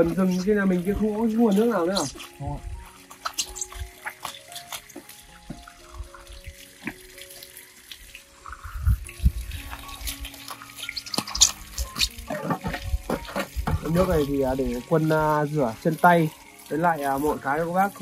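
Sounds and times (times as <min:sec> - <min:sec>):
soft background music: 0:00.0 - 0:18.0
water running and splashing: 0:00.0 - 0:18.0.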